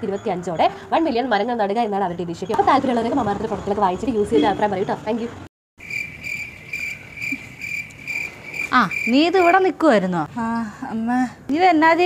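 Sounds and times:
cricket chirping: 5.8 - 9.6.

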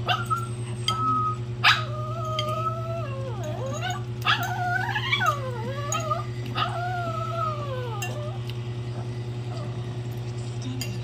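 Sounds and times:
dog whining: 0.0 - 9.9.

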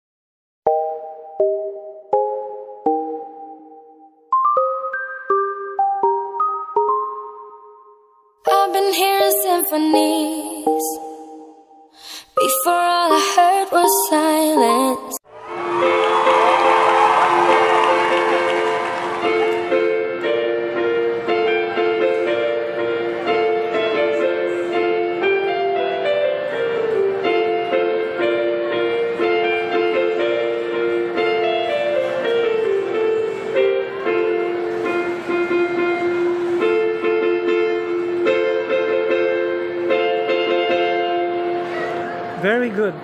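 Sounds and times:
electronic keyboard notes: 0.7 - 43.0
crowd murmur: 15.4 - 43.0.

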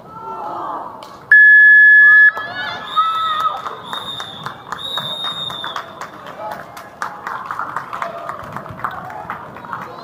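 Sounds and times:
game clock buzzer: 1.3 - 2.4.

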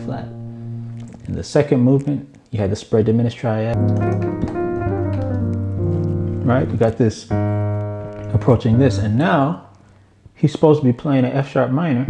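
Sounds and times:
piano chords: 0.0 - 1.4, 3.7 - 9.8.

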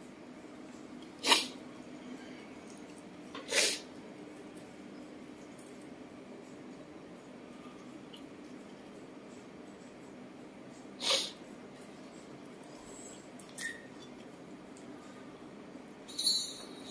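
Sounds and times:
faint steady hum: 0.0 - 16.9
person sneezing: 1.2 - 1.6, 3.5 - 3.9, 11.0 - 11.4.

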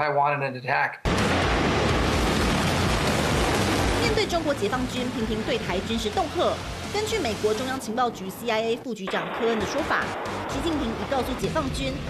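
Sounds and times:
rocket motor roaring: 1.1 - 7.9.

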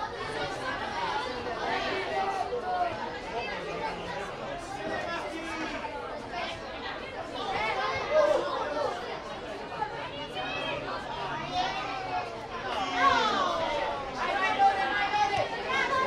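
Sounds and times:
crowd chattering: 0.0 - 16.0.

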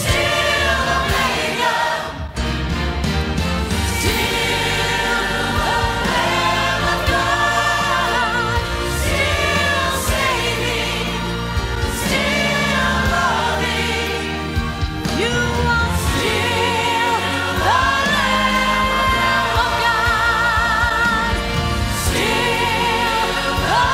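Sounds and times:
church choir singing: 0.0 - 23.9.

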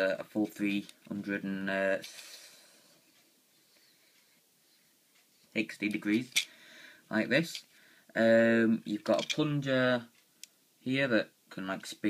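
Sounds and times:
person speaking: 0.0 - 2.8, 5.4 - 10.2.

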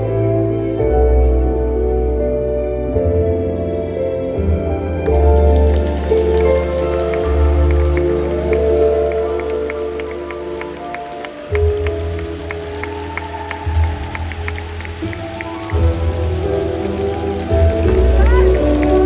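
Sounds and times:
ballroom dance music: 0.0 - 19.0.

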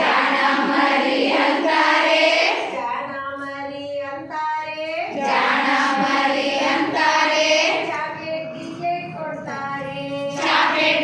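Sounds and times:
women singing together: 0.0 - 11.0.

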